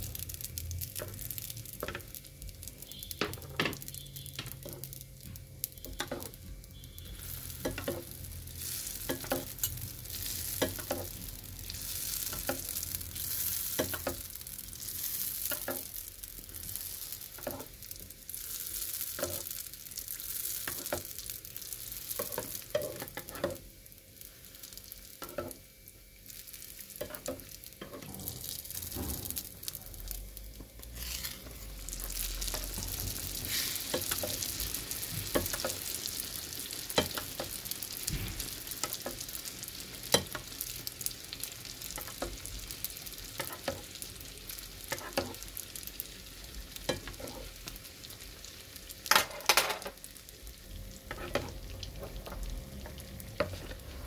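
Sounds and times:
dough sizzling in hot oil: 0.0s - 54.0s
metal spoon basting oil: 5.7s - 19.5s, 36.9s - 37.5s, 39.9s - 40.6s, 44.8s - 45.4s, 46.8s - 47.6s.

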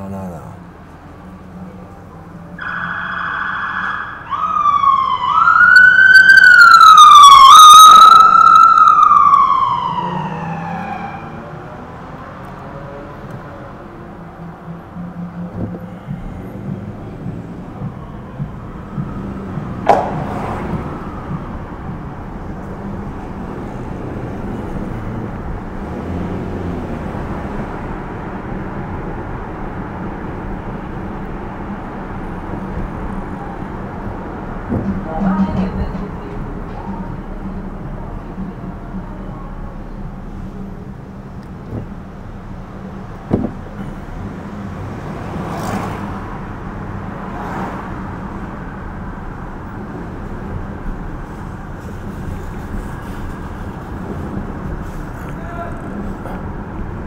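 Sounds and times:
car and road noise: 0.0s - 57.0s
police siren wailing: 2.5s - 11.9s, 17.6s - 23.1s
siren chirp: 2.6s - 11.4s.

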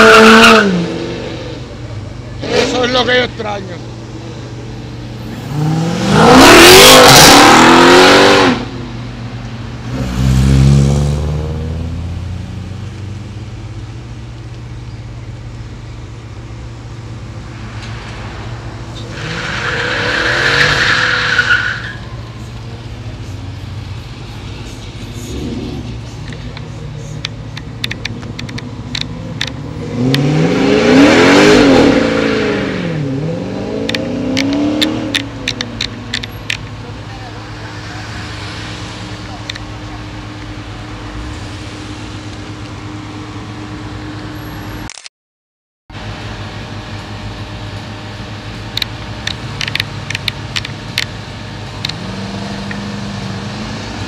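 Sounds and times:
cars accelerating past: 5.2s - 8.9s, 9.8s - 13.2s, 28.6s - 44.6s, 51.7s - 54.0s
tyre squeal: 19.0s - 22.3s
sharp clicks: 26.2s - 30.2s, 48.7s - 51.1s.

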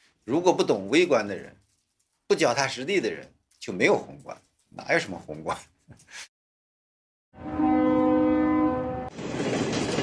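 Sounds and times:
train horn: 7.4s - 9.2s
train crossing steel bridge: 7.5s - 10.0s.

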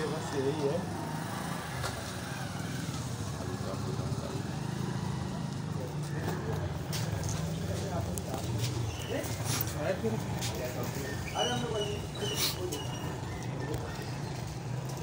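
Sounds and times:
faint indistinct voices: 0.0s - 15.0s
low hum of street noise: 0.0s - 15.0s.

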